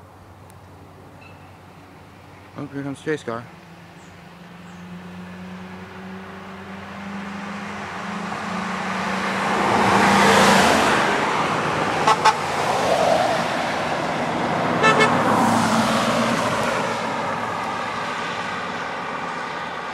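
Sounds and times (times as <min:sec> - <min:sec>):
vehicles passing by: 0:00.0 - 0:19.9
vehicle horn double toot: 0:12.0 - 0:12.5, 0:14.8 - 0:15.2.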